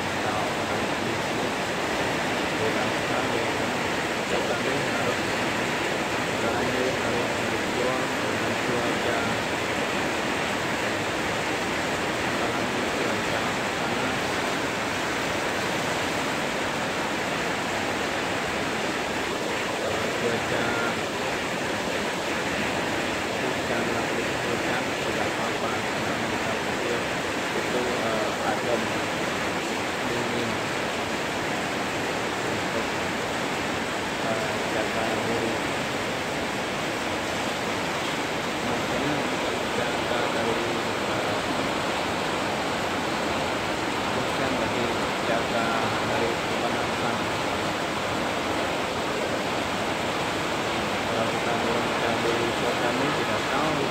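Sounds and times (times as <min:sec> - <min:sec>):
heavy rain on metal roofs: 0:00.0 - 0:53.9.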